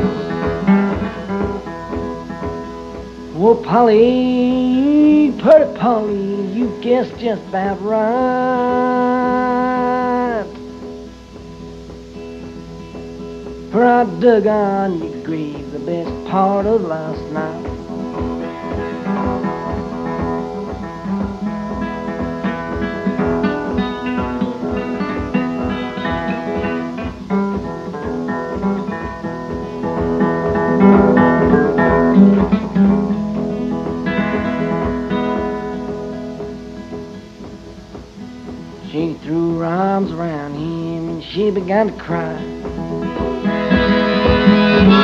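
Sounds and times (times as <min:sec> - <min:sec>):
acoustic guitar picking: 0:00.0 - 0:45.0
person singing: 0:03.3 - 0:10.7, 0:13.7 - 0:22.7, 0:38.8 - 0:45.0.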